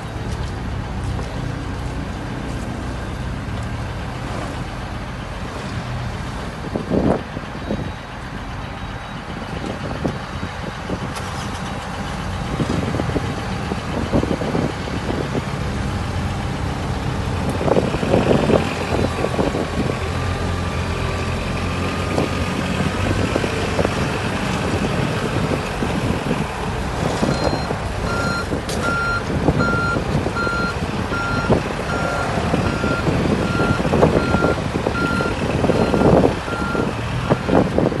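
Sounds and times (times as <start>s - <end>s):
diesel engine running: 0.0s - 38.0s
reversing alarm beeping: 27.3s - 37.6s.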